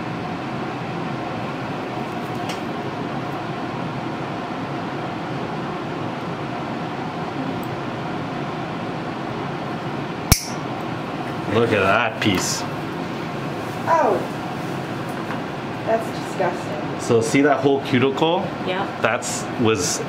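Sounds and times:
ventilation hum and hiss: 0.0s - 20.0s.

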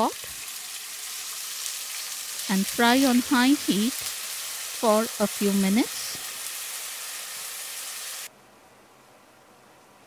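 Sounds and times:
onion paste sizzling in oil: 0.0s - 8.3s.

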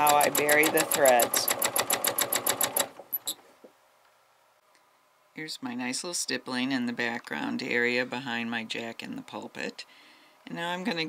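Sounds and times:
sewing machine stitching: 0.0s - 3.4s.

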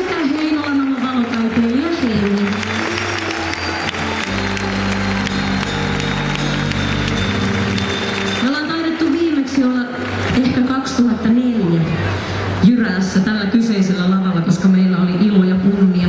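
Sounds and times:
crowd clapping: 0.0s - 11.3s
low keyboard chord: 2.5s - 10.6s.

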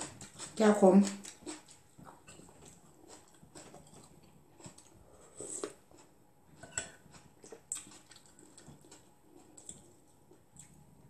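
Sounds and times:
quiet chewing: 0.0s - 11.0s.

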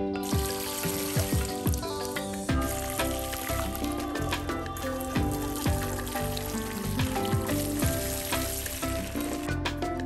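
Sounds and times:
background music: 0.0s - 10.0s
water splashing on plant leaves: 0.2s - 9.6s.

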